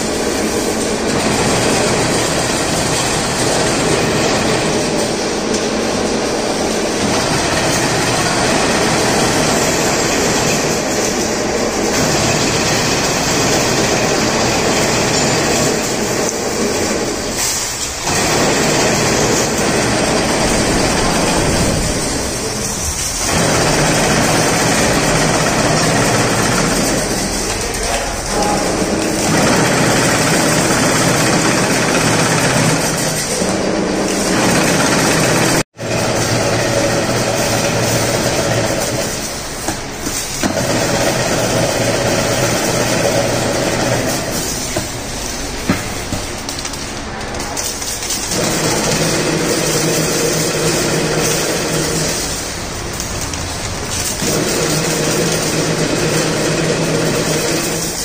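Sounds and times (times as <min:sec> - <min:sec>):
fence weaving machine clattering: 0:00.0 - 0:58.0.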